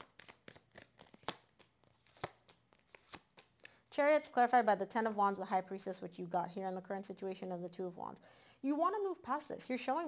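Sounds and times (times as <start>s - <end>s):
playing cards clicking: 0.0s - 3.7s.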